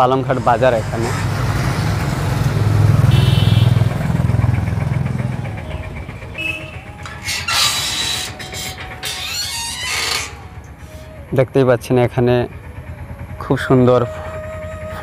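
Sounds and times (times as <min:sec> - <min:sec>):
passing vehicle engine hum: 0:00.0 - 0:15.0.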